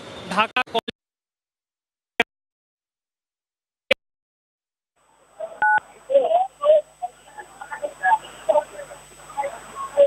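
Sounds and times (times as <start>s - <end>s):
faint background noise: 5.0s - 10.0s.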